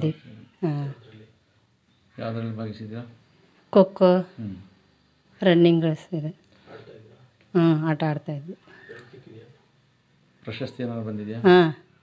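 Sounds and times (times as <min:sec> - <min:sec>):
woman speaking: 0:00.0 - 0:01.0, 0:03.7 - 0:04.3, 0:05.4 - 0:06.4, 0:07.5 - 0:08.6.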